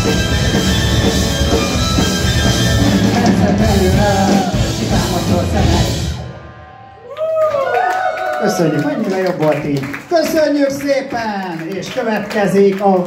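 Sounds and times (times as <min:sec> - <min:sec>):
rock band playing live: 0:00.0 - 0:06.5.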